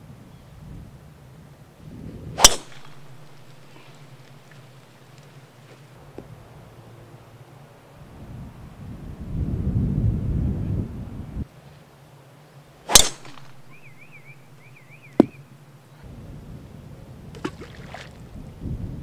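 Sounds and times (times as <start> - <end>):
wind rumble on microphone: 0.0 - 7.2, 7.8 - 11.5, 14.5 - 19.0
golf club striking ball: 2.4 - 5.2, 12.9 - 15.6
bird chirping: 13.3 - 15.6.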